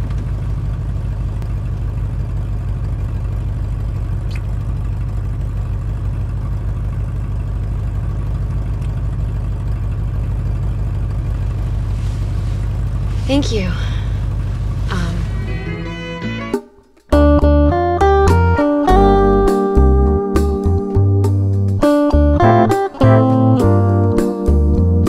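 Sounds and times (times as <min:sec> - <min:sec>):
car rumble inside cabin: 0:00.0 - 0:16.5.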